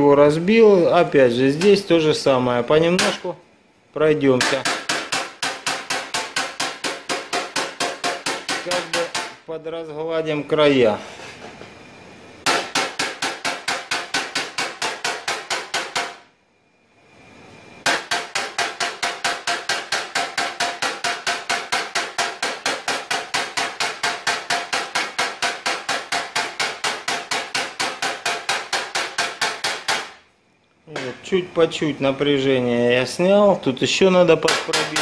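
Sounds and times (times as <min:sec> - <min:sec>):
hammer tapping sheet metal: 0:02.9 - 0:03.3, 0:04.4 - 0:09.5, 0:12.4 - 0:16.2, 0:17.8 - 0:30.2, 0:34.4 - 0:35.0.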